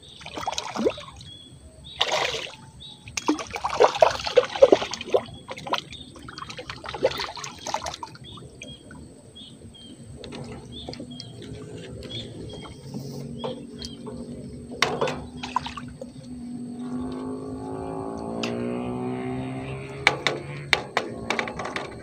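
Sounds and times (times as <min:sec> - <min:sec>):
fish splashing at water surface: 0:00.0 - 0:01.3, 0:02.0 - 0:08.7, 0:14.8 - 0:16.2.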